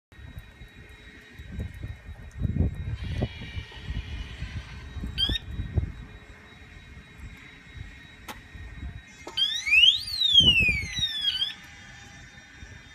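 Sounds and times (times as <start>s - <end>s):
high siren tone sweeping upward: 0.2s - 12.9s.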